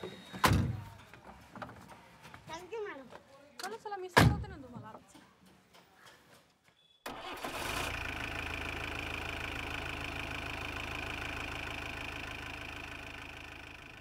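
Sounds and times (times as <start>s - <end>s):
vehicle engine starting and running: 7.1s - 14.0s.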